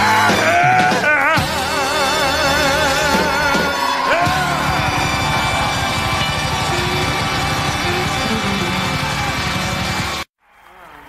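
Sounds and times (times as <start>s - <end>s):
electric blues band music: 0.0s - 10.2s.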